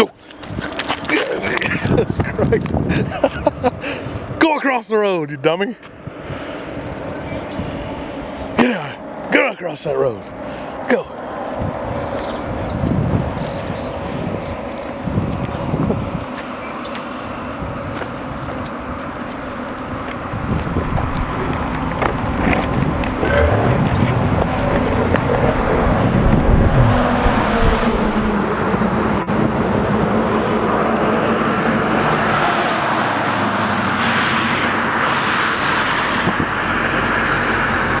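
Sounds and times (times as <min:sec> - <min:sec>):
tyre noise on asphalt: 0:00.2 - 0:03.4, 0:11.6 - 0:29.2
car engine: 0:17.4 - 0:38.0.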